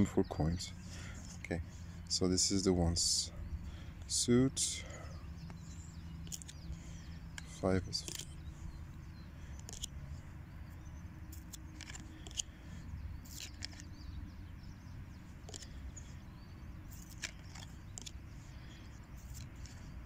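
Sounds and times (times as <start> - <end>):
cards clicking and rustling: 6.2 - 8.4, 9.4 - 10.0, 11.2 - 14.0, 15.4 - 15.9, 16.8 - 20.0.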